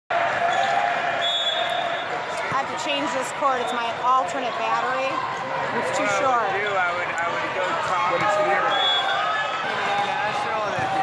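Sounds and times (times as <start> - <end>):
crowd and players voices: 0.1 - 11.0
volleyball game sounds: 0.1 - 11.0.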